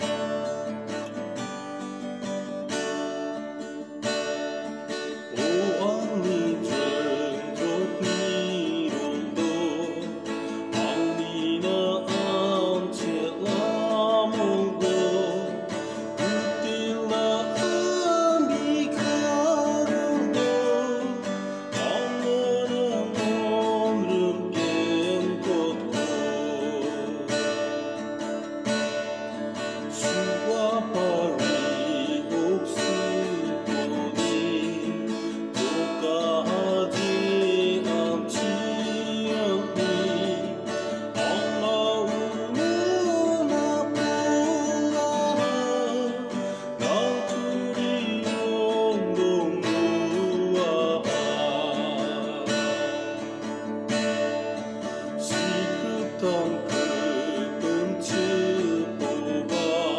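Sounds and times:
man singing a hymn: 0.0 - 0.4, 5.2 - 28.2, 29.6 - 53.7, 55.0 - 59.9
acoustic guitar strumming: 0.0 - 59.9.

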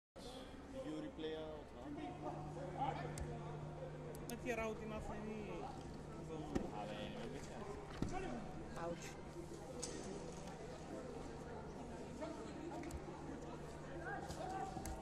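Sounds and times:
steady low hum: 0.2 - 15.0
voices in a sports hall: 0.2 - 15.0.

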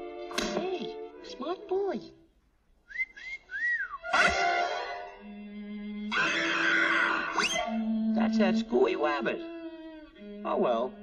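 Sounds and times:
person whistling high notes: 2.8 - 4.5.

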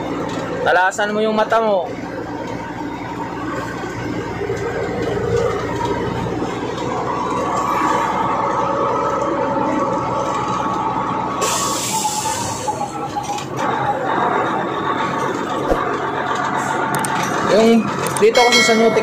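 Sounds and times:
truck engine running: 0.0 - 19.0.

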